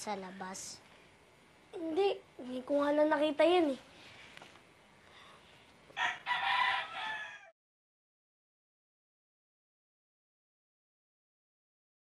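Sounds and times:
rooster crowing: 6.0 - 7.6.

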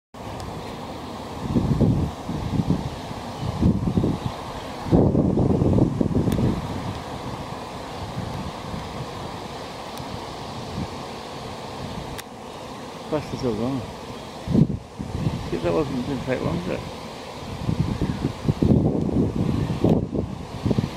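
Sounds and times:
bees humming: 0.2 - 20.9
wind hitting microphone: 1.3 - 12.2, 13.2 - 20.9.

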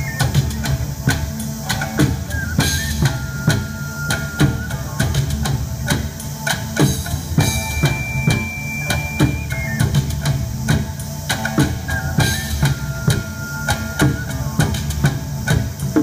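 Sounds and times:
ocarina long high notes: 0.0 - 16.0
plucked shamisen: 0.0 - 16.0
taiko drum strokes: 0.0 - 16.0.

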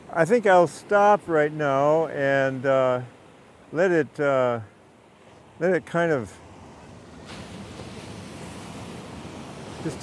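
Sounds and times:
ocean surf breaking on rocks: 0.0 - 10.0.

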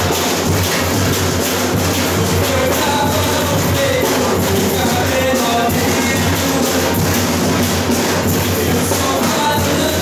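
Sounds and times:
drums beating fast rhythm: 0.0 - 10.0.

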